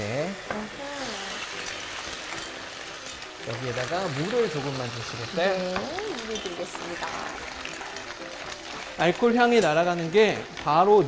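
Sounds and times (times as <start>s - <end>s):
shellfish sizzling in a pan: 0.0s - 11.0s.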